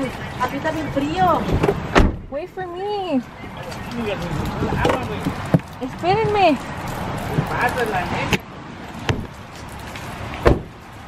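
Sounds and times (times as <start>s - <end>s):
handling and movement noise: 3.2s - 11.0s.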